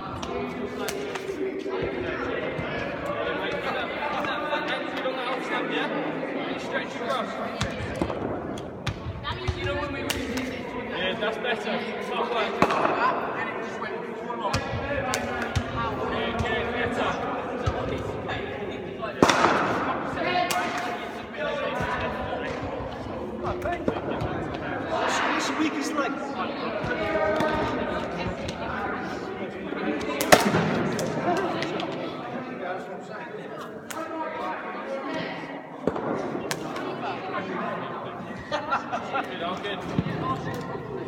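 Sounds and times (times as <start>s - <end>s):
ball bouncing on hall floor: 7.6s - 10.5s.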